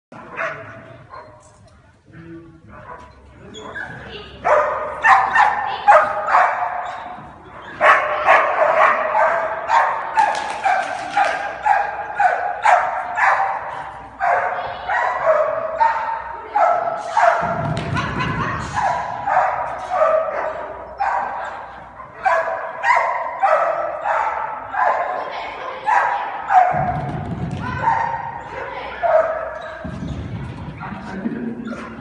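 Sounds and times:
dog barking: 0:00.3 - 0:01.4, 0:04.4 - 0:07.0, 0:07.8 - 0:17.6, 0:18.8 - 0:27.0, 0:27.8 - 0:29.8.

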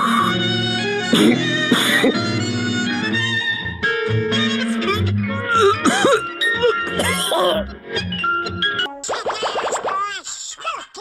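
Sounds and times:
background music: 0:00.0 - 0:09.0
cartoon voice coughing and choking: 0:01.1 - 0:02.2, 0:05.6 - 0:07.7.

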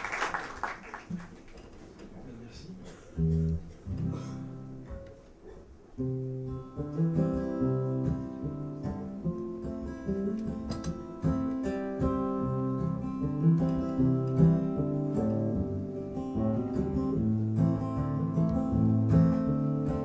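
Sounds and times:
acoustic guitar playing: 0:03.0 - 0:20.0.

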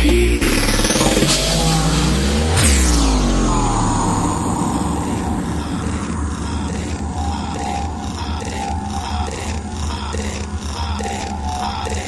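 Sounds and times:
deep bass: 0:00.0 - 0:10.6
synth swoosh: 0:00.5 - 0:09.9.

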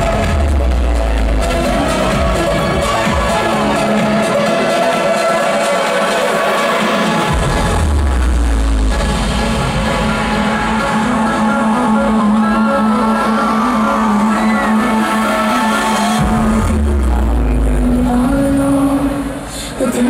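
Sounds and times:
electronic dance music: 0:00.0 - 0:20.0.

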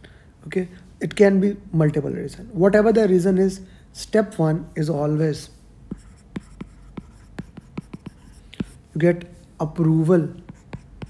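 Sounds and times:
stylus tapping on glass screen: 0:05.9 - 0:08.8.

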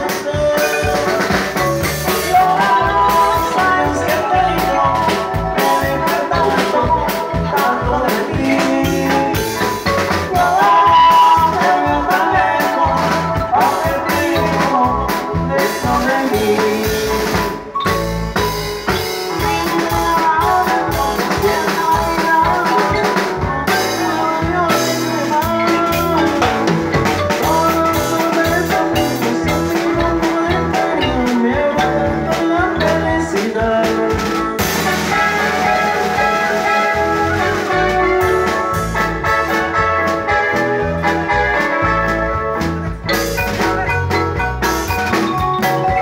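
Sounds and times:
bass line: 0:00.0 - 0:46.0
drum kit beat: 0:00.0 - 0:46.0
marimba band playing: 0:00.0 - 0:46.0.

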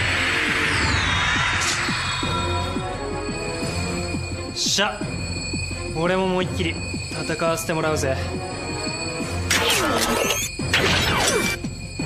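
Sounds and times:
noisy sound-effect hits with squeal: 0:00.0 - 0:04.4, 0:09.4 - 0:12.0
dramatic soundtrack music: 0:00.0 - 0:12.0.

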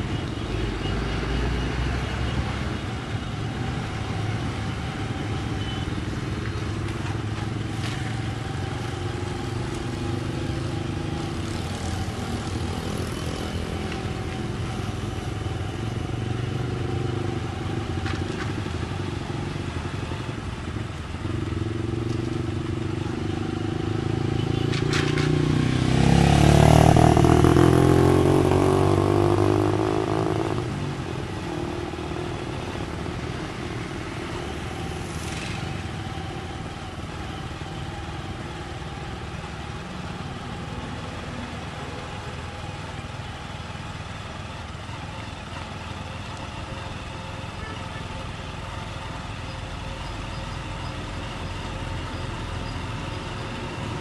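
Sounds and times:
street traffic: 0:00.0 - 0:54.0
vehicle passing close: 0:23.4 - 0:36.2.

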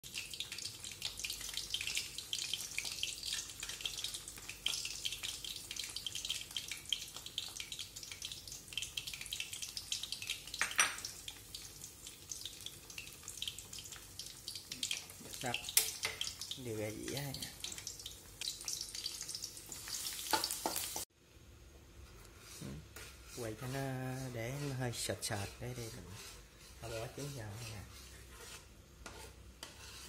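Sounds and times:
eggs sizzling in hot oil: 0:00.0 - 0:21.1, 0:22.0 - 0:30.0.

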